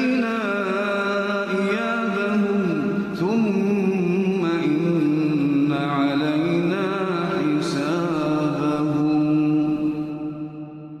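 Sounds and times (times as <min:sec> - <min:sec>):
man chanting a recitation: 0:00.0 - 0:10.4.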